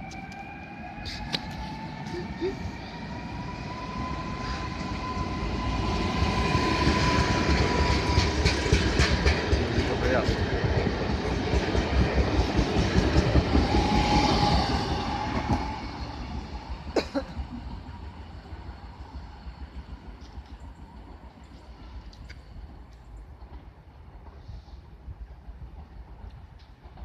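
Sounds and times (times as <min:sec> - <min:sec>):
electric train whine: 0:00.0 - 0:27.0.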